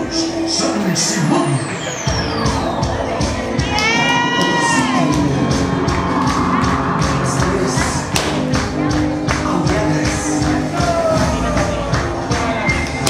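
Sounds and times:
dance music with drumbeat: 0:01.7 - 0:13.0
high-pitched shout: 0:03.6 - 0:05.1
crowd cheering: 0:03.6 - 0:07.6.

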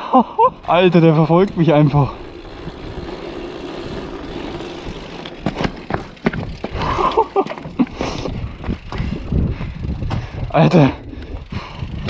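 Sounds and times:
bike tyres rumbling on cobblestones: 0:00.4 - 0:12.0
bike jolting knocks: 0:04.0 - 0:08.0.

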